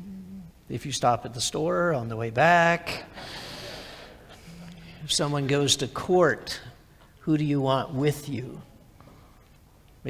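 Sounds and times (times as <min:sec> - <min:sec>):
man's voice humming faintly: 0:00.0 - 0:00.9, 0:04.3 - 0:05.8
man inhaling sharply: 0:03.1 - 0:05.0.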